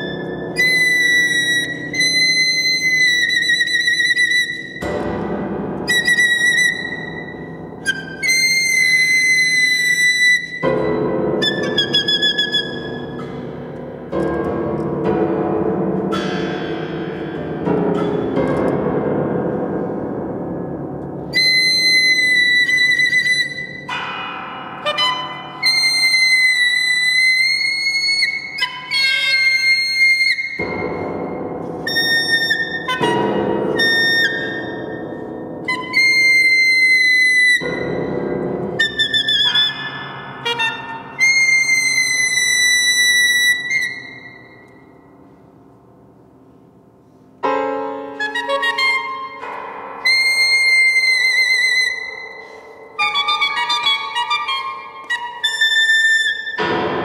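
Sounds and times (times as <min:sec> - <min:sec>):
low ringing piano strings: 0:00.0 - 0:57.0.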